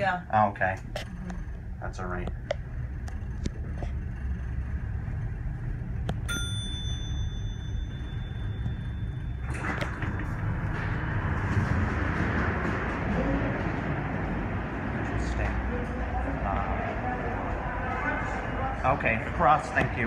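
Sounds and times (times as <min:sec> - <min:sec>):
elevator low rumble: 0:00.0 - 0:20.0
elevator bell ding: 0:06.2 - 0:11.0.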